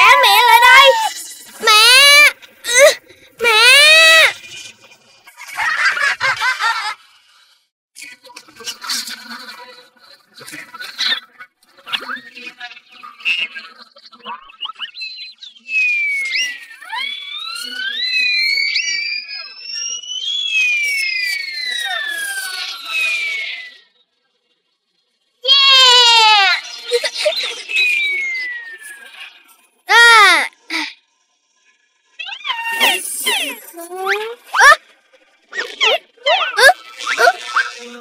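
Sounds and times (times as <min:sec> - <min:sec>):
loud falling wail: 0:00.0 - 0:04.3
sliding cartoon whistling tones: 0:14.6 - 0:23.9, 0:26.1 - 0:29.3, 0:32.2 - 0:34.8, 0:35.5 - 0:37.8.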